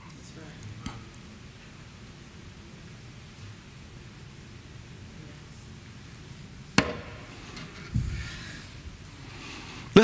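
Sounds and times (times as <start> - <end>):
low room hiss: 0.0 - 10.0
sharp knock: 6.8 - 7.2.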